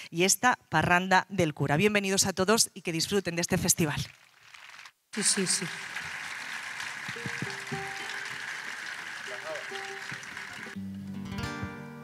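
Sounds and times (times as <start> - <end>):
plucked string notes: 7.2 - 8.3, 10.8 - 12.0.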